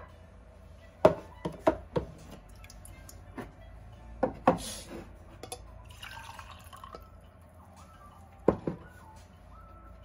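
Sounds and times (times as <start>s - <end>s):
tea dripping into glass: 5.9s - 7.1s.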